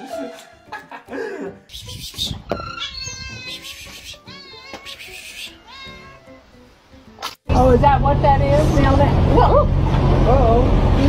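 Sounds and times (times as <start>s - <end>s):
cat meowing: 1.7s - 6.4s.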